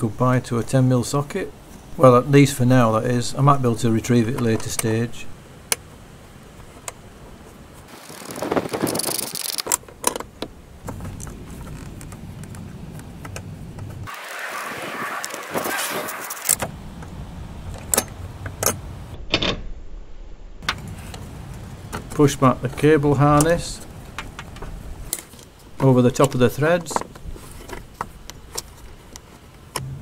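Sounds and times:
scraping and rustling handling: 23.7 - 29.6.

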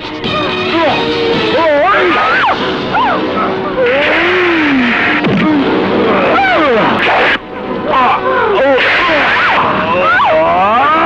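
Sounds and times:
harsh hissing noise: 3.8 - 7.4.

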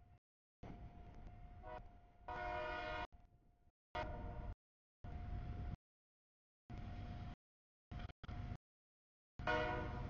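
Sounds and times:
locomotive air horn: 1.6 - 3.1, 4.0 - 4.5, 9.4 - 10.0
train rumbling: 9.4 - 10.0.

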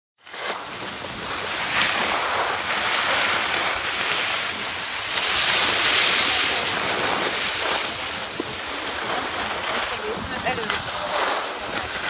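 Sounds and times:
wind noise on microphone: 0.2 - 12.0.

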